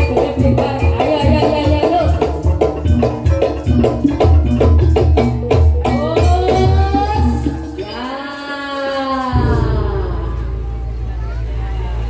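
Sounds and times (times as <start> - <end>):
crowd chatter: 5.7 - 12.0
low rumble: 9.4 - 12.0.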